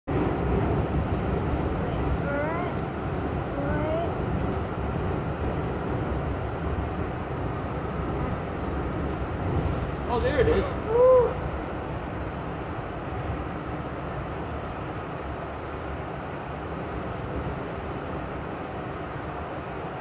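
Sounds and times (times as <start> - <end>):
subway train rumbling in tunnel: 0.0 - 20.0.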